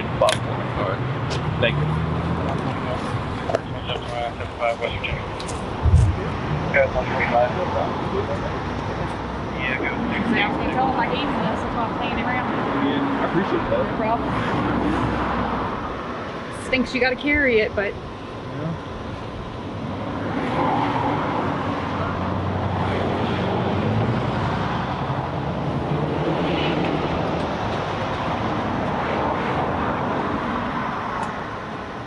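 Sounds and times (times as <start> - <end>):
indistinct voices: 0.0 - 19.0
passing road traffic: 0.0 - 32.0
thump: 5.8 - 6.2.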